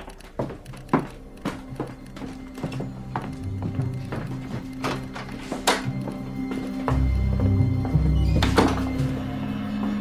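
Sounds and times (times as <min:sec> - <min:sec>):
background music of low tones: 0:00.0 - 0:10.0.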